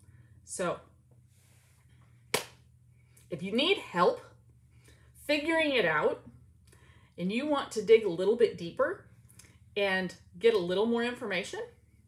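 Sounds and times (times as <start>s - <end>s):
faint low hum: 0.0s - 12.0s
hand clap: 2.3s - 2.6s.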